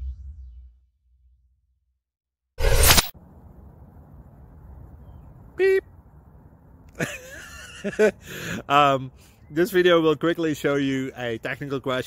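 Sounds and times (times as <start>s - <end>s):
low outdoor rumble: 3.2s - 7.4s.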